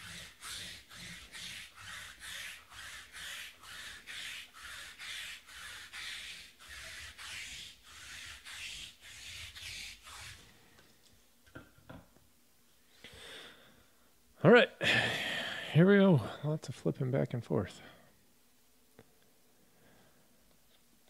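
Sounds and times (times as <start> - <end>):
lint roller rasping over felt: 0.0 - 10.6.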